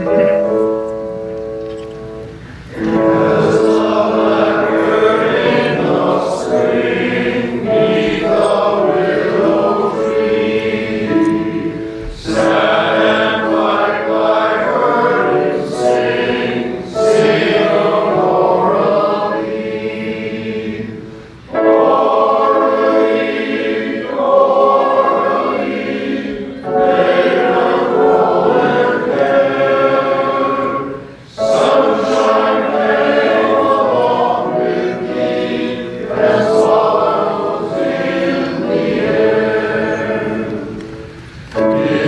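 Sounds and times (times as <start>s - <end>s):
male choir singing in parts: 2.7s - 42.0s.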